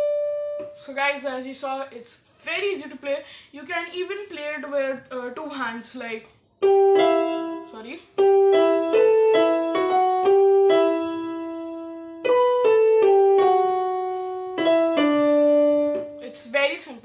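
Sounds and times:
electronic keyboard piano melody: 0.0 - 0.8, 6.6 - 16.3.

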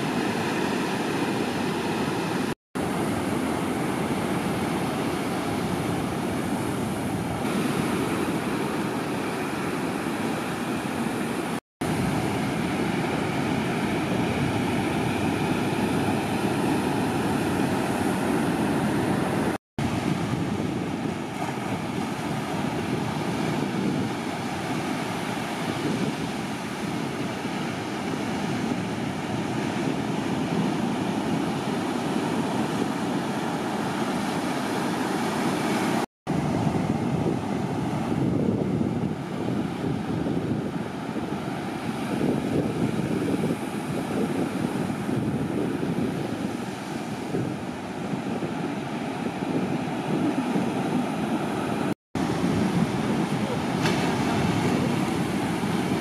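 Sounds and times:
ocean surf breaking: 0.0 - 56.0
wind on microphone: 0.0 - 56.0.

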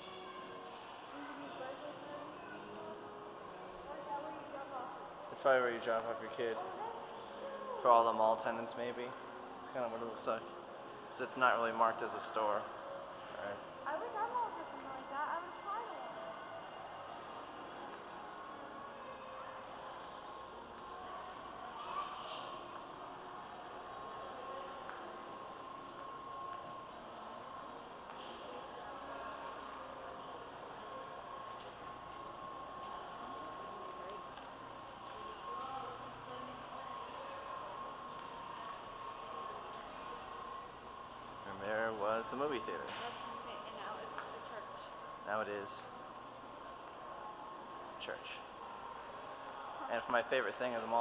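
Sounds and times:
indoor mall hiss and hum: 0.0 - 51.0.

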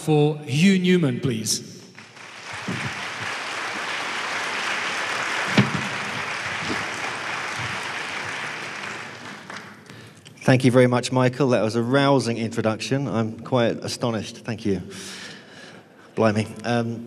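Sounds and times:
audience applauding: 2.0 - 10.0
sharp knock: 5.5 - 6.0.

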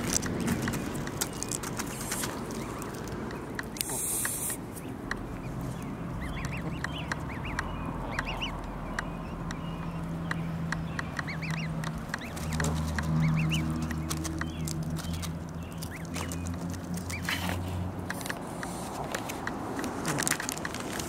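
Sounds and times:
geese plucking grass clicks: 0.0 - 21.0
goslings peeping: 0.0 - 21.0.

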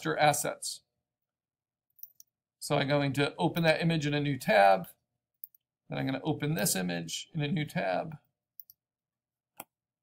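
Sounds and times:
computer mouse clicks: 8.6 - 8.8.

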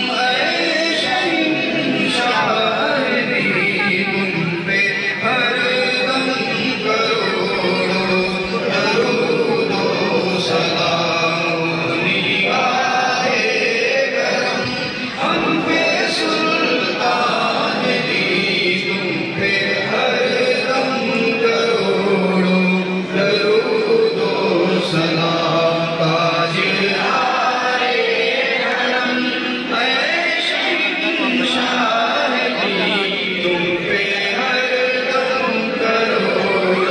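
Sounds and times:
men chanting together: 0.0 - 22.4, 23.2 - 36.9.

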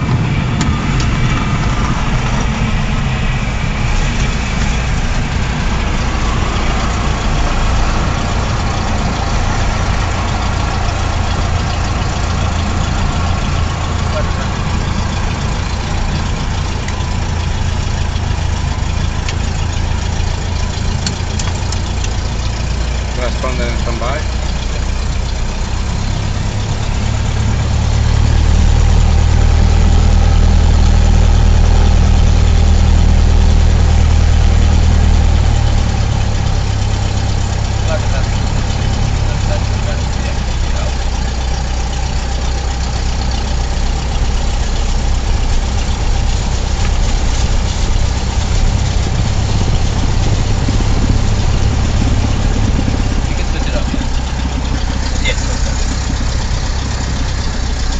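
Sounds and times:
airplane engine and propeller: 0.0 - 57.9.

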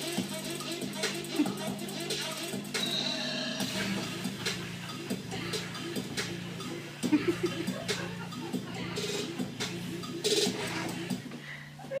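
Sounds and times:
low hum: 2.7 - 11.9
people laughing: 7.0 - 9.9.

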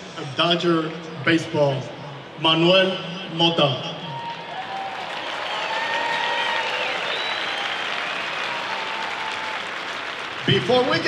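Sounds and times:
stadium crowd applauding: 2.2 - 11.0.

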